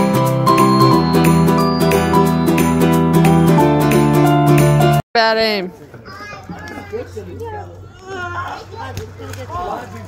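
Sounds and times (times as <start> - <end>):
people and children chattering: 5.4 - 10.0.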